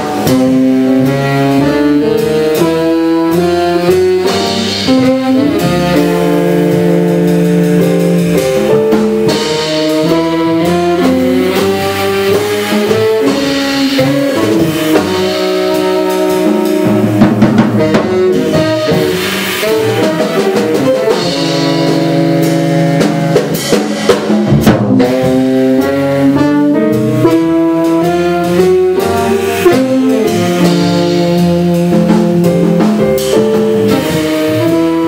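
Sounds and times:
electronic wind instrument: 0:00.0 - 0:23.7
saxophone: 0:00.0 - 0:23.9, 0:24.6 - 0:35.0
drum kit: 0:00.0 - 0:35.0
piano: 0:00.0 - 0:35.0
upright bass: 0:00.0 - 0:35.0.

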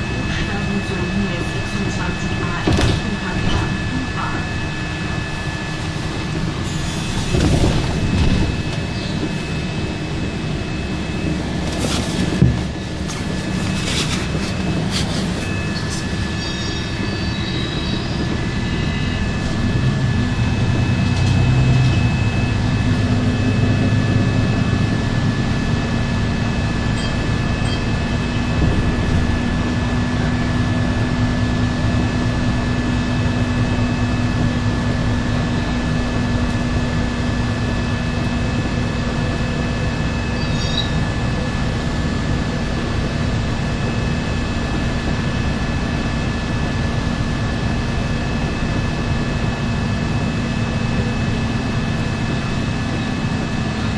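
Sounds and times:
bus drive noise: 0:00.0 - 0:53.9
thin high whine: 0:03.2 - 0:23.6.

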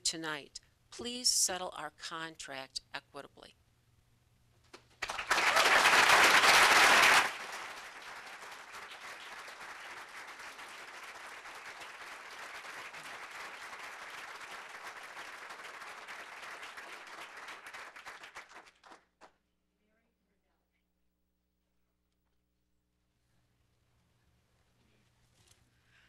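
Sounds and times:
audience applause: 0:05.0 - 0:19.1.

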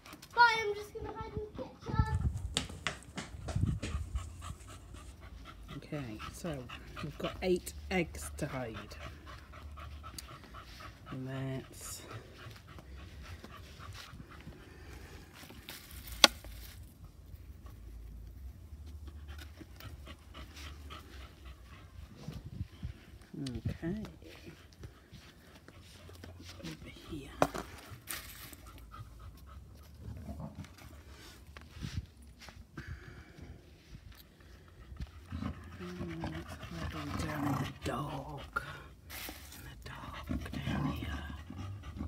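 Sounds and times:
dog panting: 0:03.2 - 0:15.6, 0:17.5 - 0:42.0.

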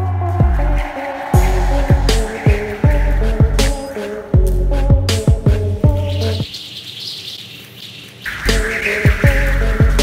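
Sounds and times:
music with heavy beat and bass: 0:00.0 - 0:06.5, 0:08.3 - 0:10.0
rising swell of noise: 0:00.5 - 0:04.4.

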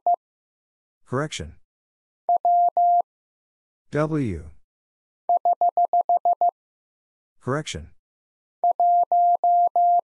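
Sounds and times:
morse code dits: 0:08.6 - 0:10.0.

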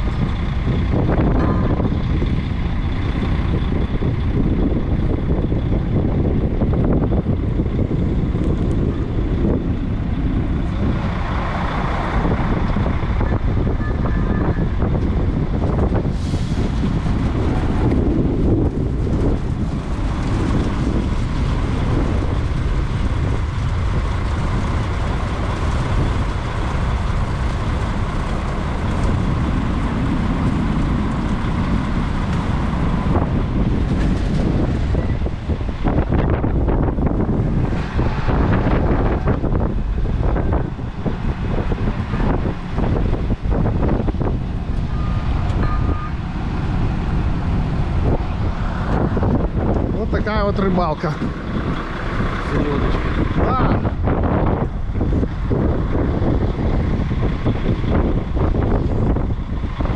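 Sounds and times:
crane engine running: 0:00.0 - 0:59.9
wind buffeting microphone: 0:00.0 - 0:59.9.

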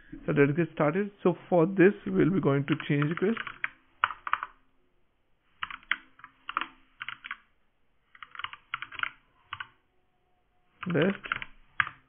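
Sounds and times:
computer keyboard typing: 0:02.6 - 0:04.6, 0:05.6 - 0:07.5, 0:08.1 - 0:09.8, 0:10.8 - 0:12.0.

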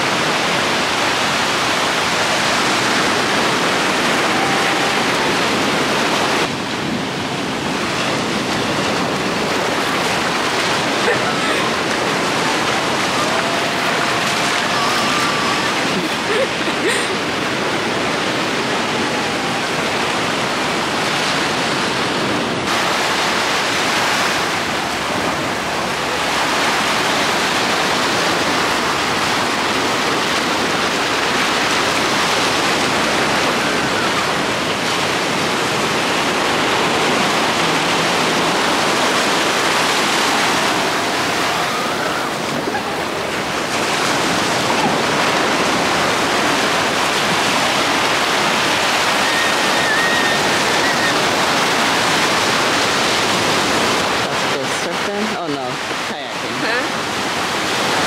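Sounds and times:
ocean surf breaking on shore: 0:00.0 - 0:58.0.

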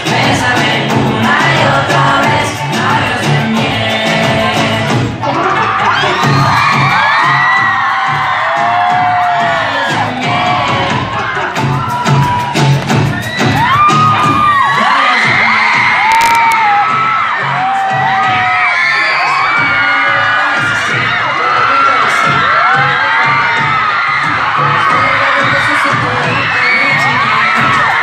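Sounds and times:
live band music: 0:00.0 - 0:07.2, 0:07.9 - 0:14.9
crowd screaming and cheering: 0:00.0 - 0:28.0.

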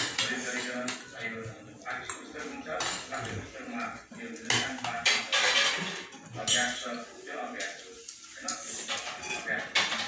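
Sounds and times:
metal spoon scraping bowl: 0:05.0 - 0:07.0, 0:07.6 - 0:10.0.

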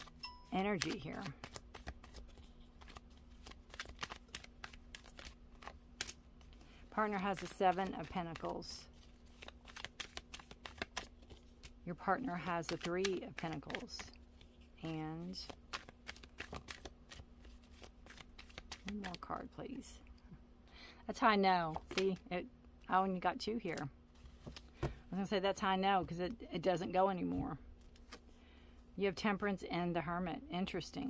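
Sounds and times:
cards clicking and flicking: 0:00.0 - 0:19.4, 0:21.7 - 0:22.3, 0:23.6 - 0:25.0, 0:27.8 - 0:28.3.

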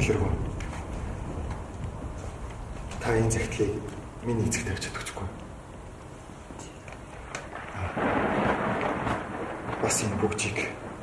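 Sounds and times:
rushing rumbling noise: 0:00.0 - 0:11.0.

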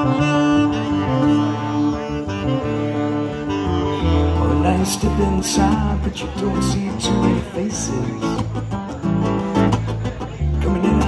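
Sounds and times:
saxophone playing: 0:00.0 - 0:06.3
guitar accompaniment: 0:00.0 - 0:11.0.

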